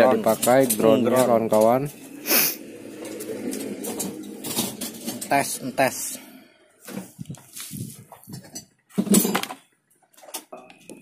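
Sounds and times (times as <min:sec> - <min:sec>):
knocks and clinks handling cables: 0:08.1 - 0:11.0.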